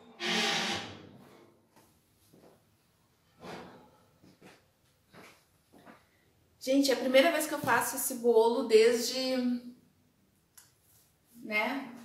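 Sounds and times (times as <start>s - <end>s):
loud burst of noise: 0.2s - 1.0s
faint knocks and rustles: 1.1s - 6.1s.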